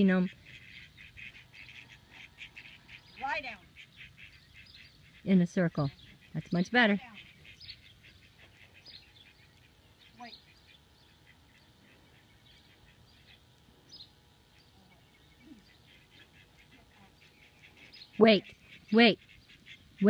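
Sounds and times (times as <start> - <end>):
soft duck quacks: 0.0 - 13.4, 14.6 - 20.0
faint bird calls: 0.0 - 20.0.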